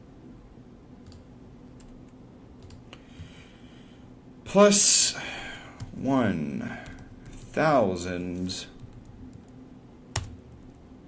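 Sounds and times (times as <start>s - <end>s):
computer keyboard typing: 1.0s - 1.2s, 2.6s - 2.8s, 8.8s - 10.8s.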